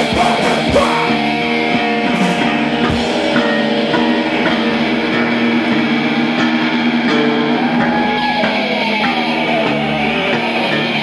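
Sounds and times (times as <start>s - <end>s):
heavy metal band playing: 0.0s - 11.0s.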